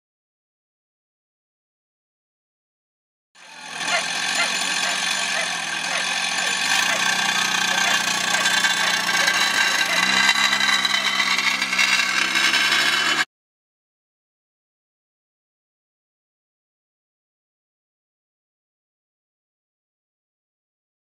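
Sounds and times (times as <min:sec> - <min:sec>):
engine running: 0:03.4 - 0:13.3.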